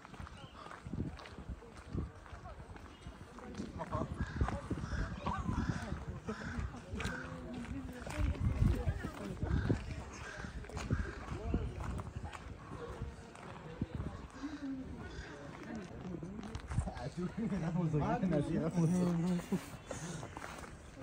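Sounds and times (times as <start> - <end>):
footsteps on wet path: 0.0 - 21.0
passers-by talking: 0.0 - 21.0.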